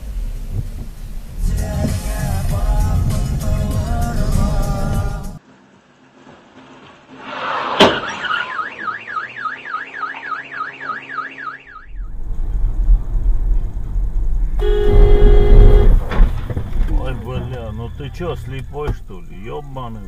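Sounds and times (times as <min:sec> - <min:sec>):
car driving rumble: 0:00.0 - 0:20.0
car alarm siren warbling: 0:08.0 - 0:12.2
car horn blast: 0:14.6 - 0:16.1.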